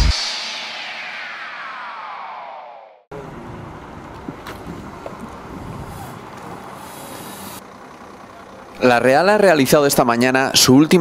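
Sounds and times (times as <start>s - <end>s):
falling electronic sweep: 0.0s - 3.3s
coach engine running: 3.1s - 11.0s.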